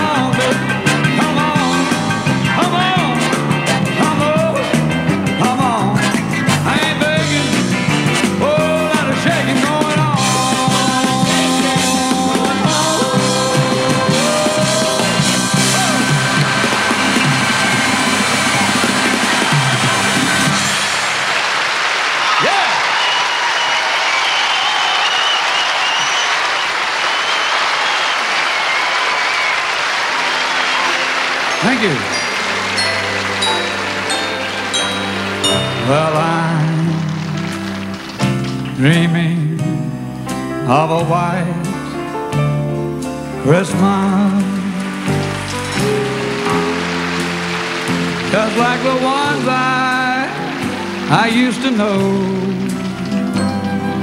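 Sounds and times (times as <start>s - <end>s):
rock and roll piano with band: 0.0s - 54.0s
audience applause and cheering: 6.3s - 39.2s, 43.5s - 54.0s
solo piano playing slow tune: 30.8s - 54.0s.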